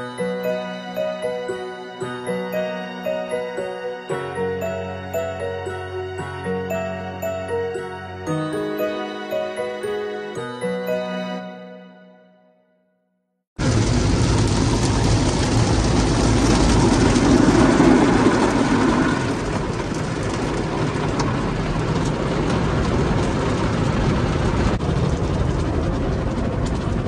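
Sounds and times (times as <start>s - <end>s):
low rumble: 13.6s - 27.0s
water jets washing over car: 13.6s - 27.0s.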